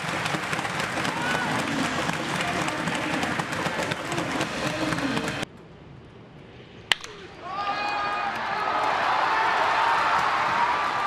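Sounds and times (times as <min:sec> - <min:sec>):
stadium crowd clapping: 0:00.0 - 0:05.4, 0:08.3 - 0:11.0
wooden bat hitting ball: 0:00.0 - 0:05.4, 0:06.9 - 0:07.3.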